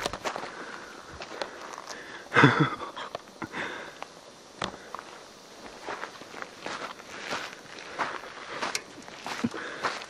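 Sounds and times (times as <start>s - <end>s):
footsteps on dry dirt ground: 0.0s - 2.1s, 4.6s - 10.0s.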